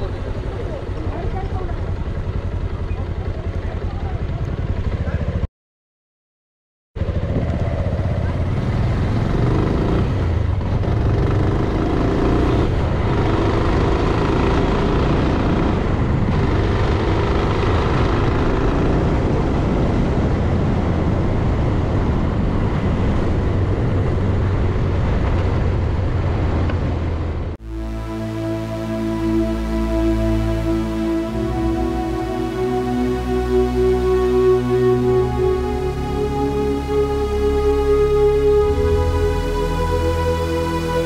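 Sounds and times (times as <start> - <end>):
motorcycle engine: 0.0 - 5.5, 7.0 - 20.1
wind and road noise: 7.0 - 27.6.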